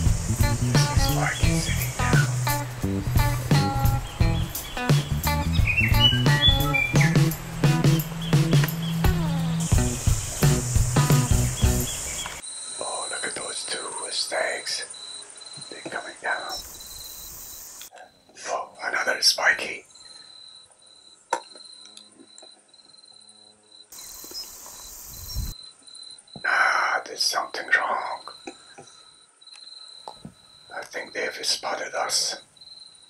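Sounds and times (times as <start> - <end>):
background music: 0.0 - 12.1
high insect chirr: 0.0 - 33.0
whispered voices: 15.7 - 16.6.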